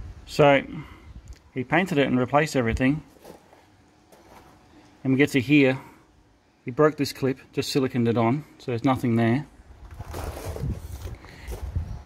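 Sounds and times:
footsteps on loose gravel: 3.0s - 4.8s
phone rustling: 3.1s - 5.0s.

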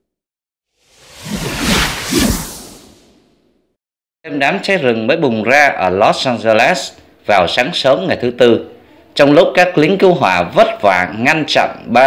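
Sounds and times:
whoosh transition effect: 0.8s - 3.4s.

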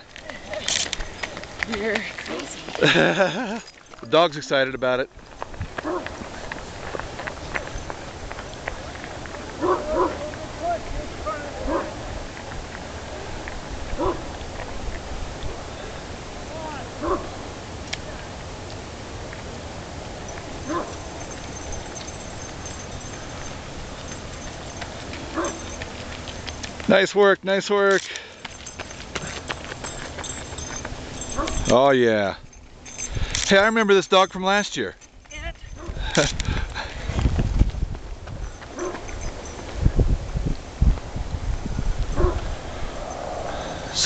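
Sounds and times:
footfalls on gravel: 0.0s - 10.5s, 20.3s - 27.2s, 27.8s - 31.8s
dog barking and yipping: 5.8s - 6.2s, 9.6s - 10.3s, 11.6s - 12.0s, 14.0s - 14.3s, 17.0s - 17.4s, 20.6s - 23.4s, 24.1s - 25.8s, 30.7s - 31.7s, 38.7s - 39.3s, 42.2s - 42.4s.

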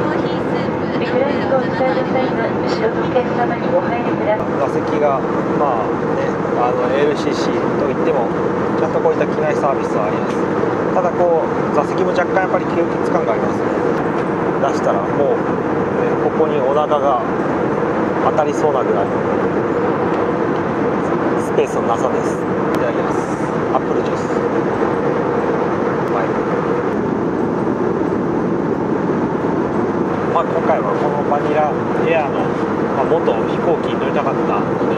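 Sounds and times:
airliner cabin drone: 0.0s - 34.9s
indistinct voices talking: 0.0s - 34.9s.

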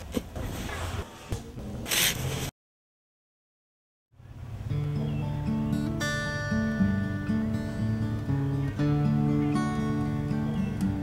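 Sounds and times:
shovel digging into soil: 1.8s - 2.5s.

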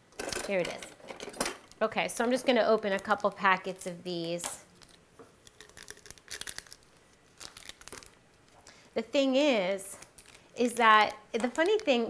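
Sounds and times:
paper crinkling: 4.7s - 8.6s, 10.0s - 10.5s.

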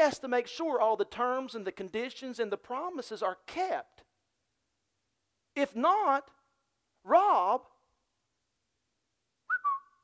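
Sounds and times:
thin whistled note: 9.5s - 10.0s.

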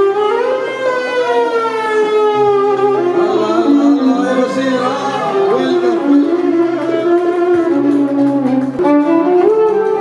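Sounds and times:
violin sliding bowed note: 0.0s - 9.8s
steady low drone: 2.4s - 7.9s.

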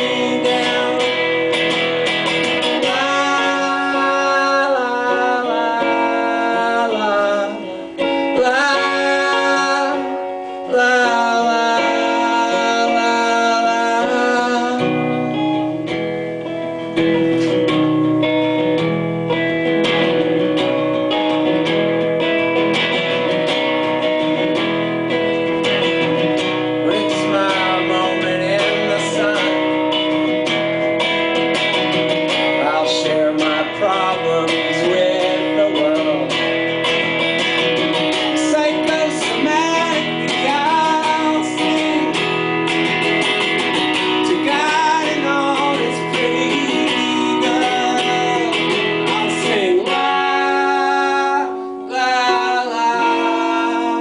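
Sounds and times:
man singing: 0.0s - 15.9s, 22.8s - 54.0s
acoustic guitar strumming: 0.0s - 54.0s.

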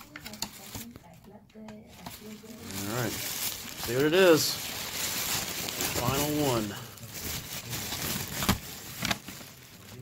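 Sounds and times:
paper bag rustling: 1.9s - 10.0s.

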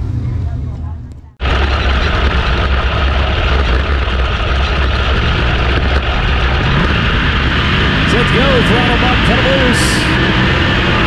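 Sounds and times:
race car engine running: 0.0s - 11.0s.

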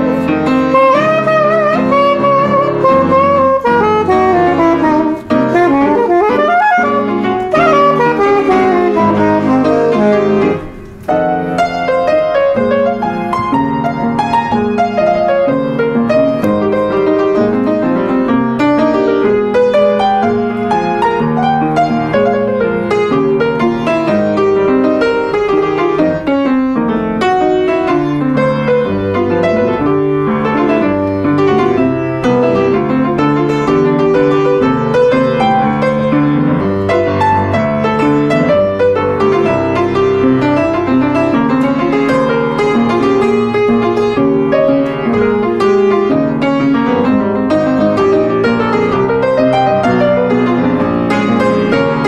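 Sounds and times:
jazz piano solo: 0.0s - 52.0s.

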